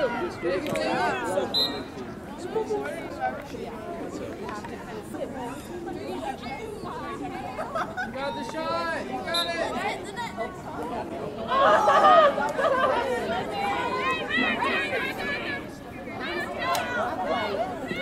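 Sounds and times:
voices chattering and calling out: 0:00.0 - 0:18.0.

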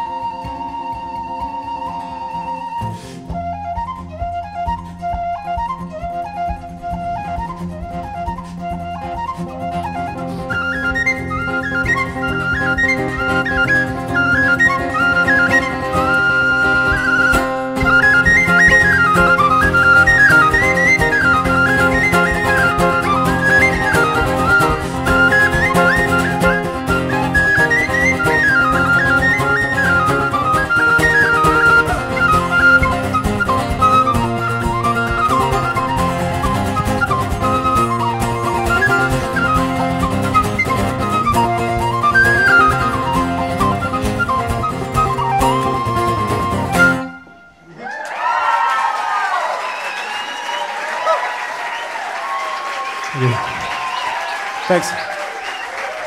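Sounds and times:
irish whistle reel melody: 0:00.0 - 0:47.7, 0:49.2 - 0:56.0
acoustic guitar accompaniment: 0:00.0 - 0:47.8, 0:53.1 - 0:53.8.

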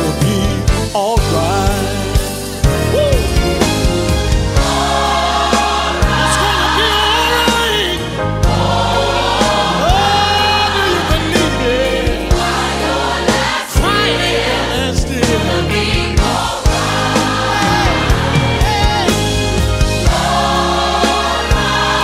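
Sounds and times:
bass line: 0:00.0 - 0:22.0
gospel choir singing: 0:00.0 - 0:22.0
drum hits: 0:15.2 - 0:22.0.

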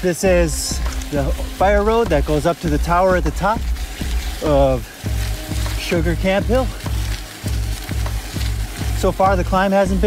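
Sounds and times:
bike tyres crunching on dirt: 0:00.0 - 0:10.0
music with deep bass beat: 0:00.0 - 0:10.0.

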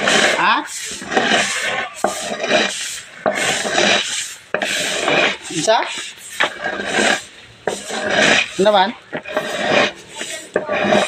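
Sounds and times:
rake scraping corn on concrete: 0:00.0 - 0:11.0.

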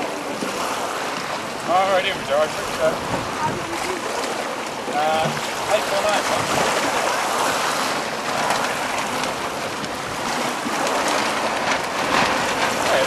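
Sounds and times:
water splashes: 0:00.0 - 0:13.0
water spray over choppy water: 0:00.0 - 0:13.0
wind: 0:00.0 - 0:13.0.

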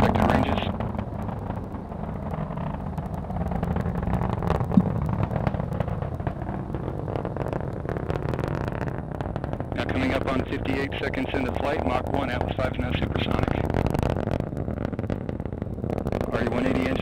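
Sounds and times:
rocket rumble with crackling: 0:00.0 - 0:17.0.

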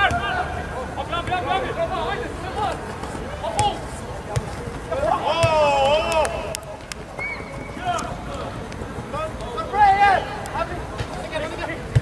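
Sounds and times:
voices shouting: 0:00.0 - 0:08.5.

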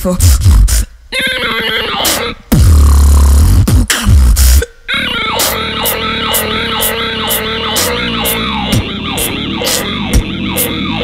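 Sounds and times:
vocal beatbox: 0:00.0 - 0:10.9.

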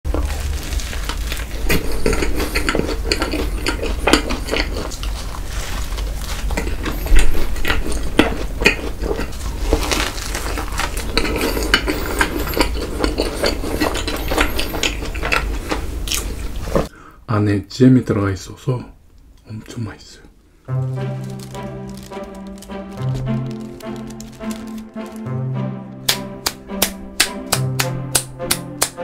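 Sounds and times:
crunchy chewing: 0:00.1 - 0:16.9, 0:21.0 - 0:25.3.

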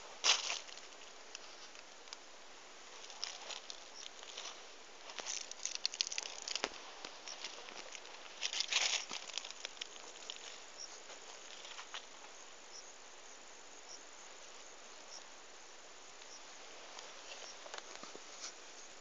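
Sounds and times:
faint hiss: 0:00.0 - 0:19.0
plants brushing against phone: 0:16.8 - 0:18.8.

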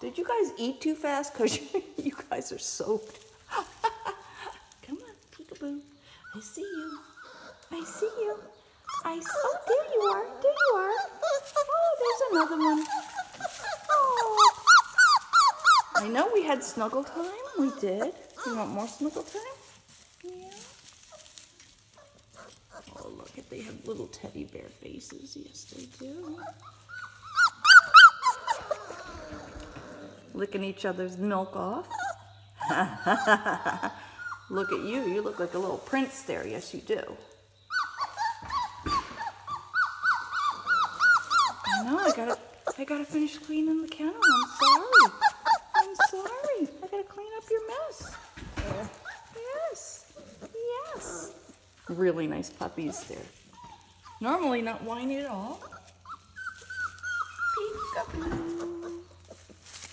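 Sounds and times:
puppies whimpering: 0:00.0 - 0:59.9.

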